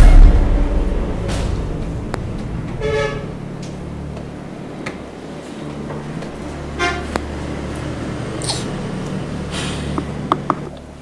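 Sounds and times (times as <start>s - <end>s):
low steady hum: 0.0s - 11.0s
short horn toots: 2.7s - 3.5s, 6.7s - 7.2s.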